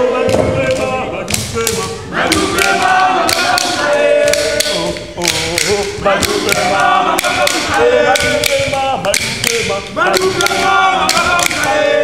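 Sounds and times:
group of voices chanting: 0.0s - 12.0s
clapping and stamping: 0.3s - 11.8s.

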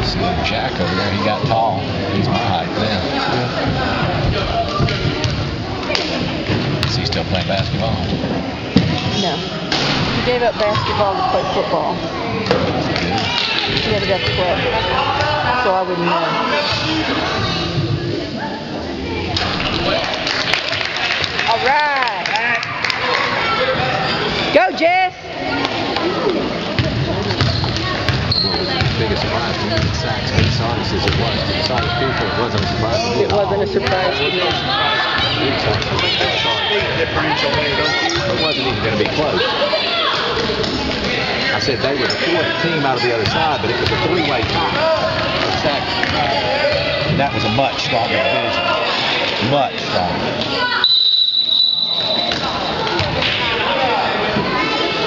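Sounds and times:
voices in a gym: 0.0s - 55.0s
basketball bouncing: 26.8s - 31.9s
referee's whistle blast: 50.8s - 52.8s.

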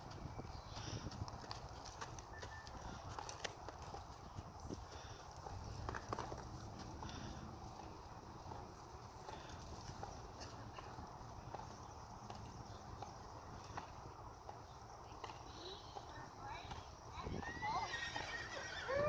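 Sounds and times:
horse hoofbeats on sand: 0.0s - 18.6s.

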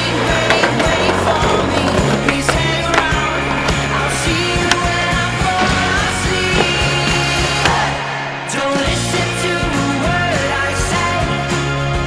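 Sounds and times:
skateboard popping and landing: 0.0s - 7.9s
skateboard wheels rolling on concrete: 0.0s - 8.0s.

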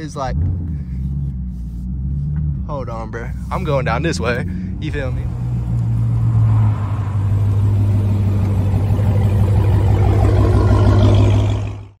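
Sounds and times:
car engine droning at low revs: 0.0s - 12.0s.

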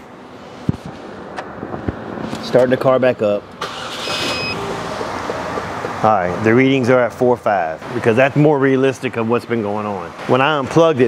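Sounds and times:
car engine running: 3.8s - 6.5s
short high beep: 4.1s - 4.7s.

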